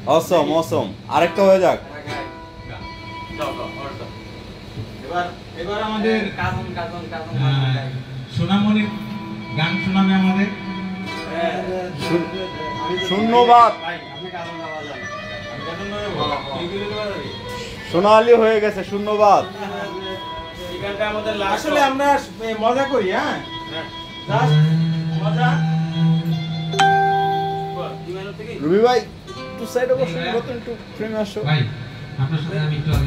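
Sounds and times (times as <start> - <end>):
guitar plucked notes: 2.0 - 5.0, 8.8 - 17.7, 23.4 - 31.0.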